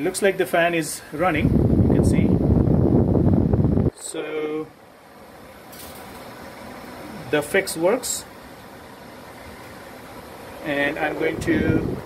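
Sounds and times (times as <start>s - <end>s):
blower motor whirring: 10.2s - 12.0s.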